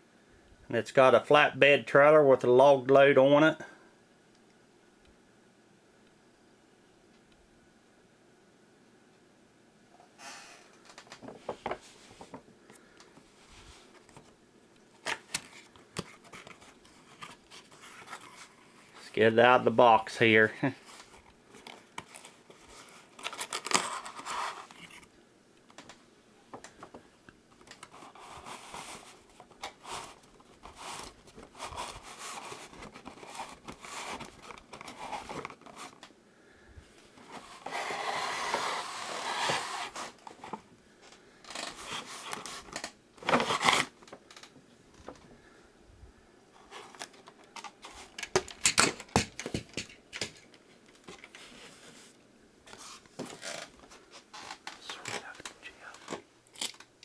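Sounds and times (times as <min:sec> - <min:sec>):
cardboard scraping and rustling: 0:20.8 - 0:25.1, 0:27.9 - 0:36.0, 0:37.2 - 0:40.6, 0:41.5 - 0:44.0.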